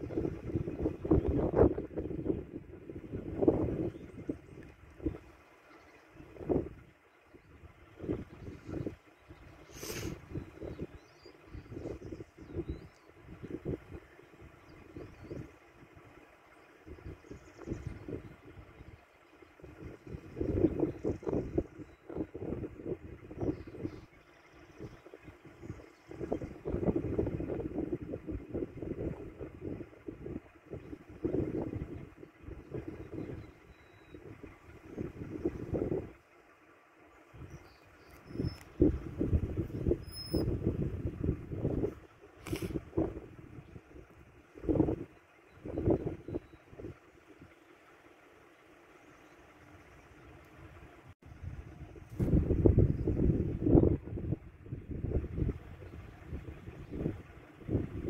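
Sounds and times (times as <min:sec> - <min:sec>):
wind buffeting microphone: 0:00.0 - 0:36.4, 0:37.1 - 0:47.7, 0:49.0 - 0:58.0
car engine idling: 0:43.1 - 0:52.7.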